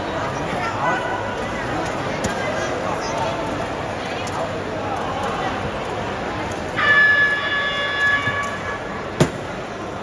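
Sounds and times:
gym crowd noise: 0.0s - 10.0s
scoreboard horn blare: 6.8s - 8.9s.

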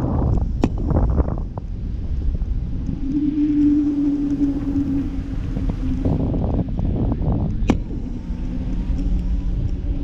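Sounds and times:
mid-pitched hum: 0.0s - 10.0s
wind buffeting microphone: 0.0s - 10.0s.

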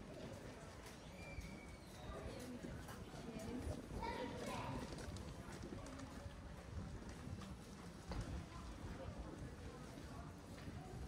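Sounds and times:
people talking: 2.0s - 11.0s.

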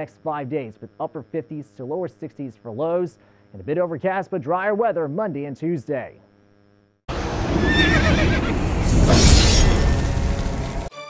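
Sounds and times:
heavy low rumble: 7.1s - 10.9s.

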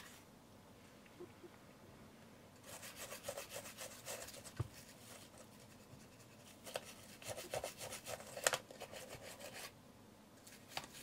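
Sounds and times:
toothbrush scrubbing: 2.6s - 9.7s.

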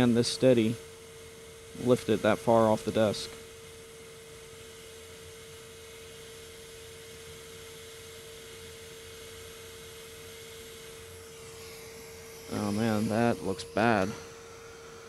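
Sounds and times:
hot air station hissing: 0.0s - 15.0s
steady whine: 0.0s - 15.0s.

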